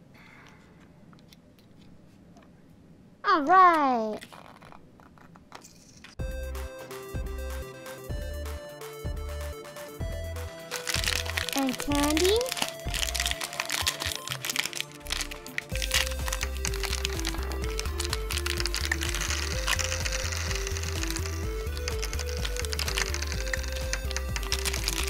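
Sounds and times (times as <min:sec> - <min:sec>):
background music with bass beat: 0:06.2 - 0:11.4
hard candies clicking: 0:10.6 - 0:25.0
plastic candy bag crinkling: 0:10.7 - 0:25.0.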